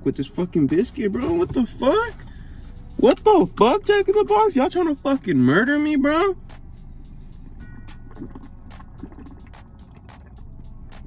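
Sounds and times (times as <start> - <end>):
low hum of car interior: 0.0 - 11.0
swallowing and mouth clicks: 7.5 - 11.0.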